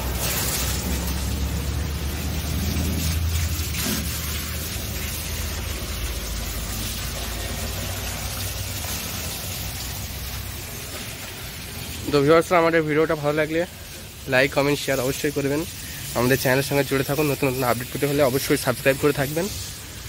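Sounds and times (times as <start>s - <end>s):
motor pump humming: 0.0s - 12.0s
water jet hissing: 0.0s - 20.0s.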